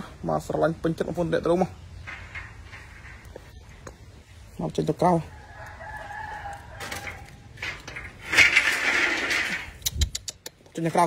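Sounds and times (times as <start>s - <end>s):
rooster crowing: 5.2s - 7.5s.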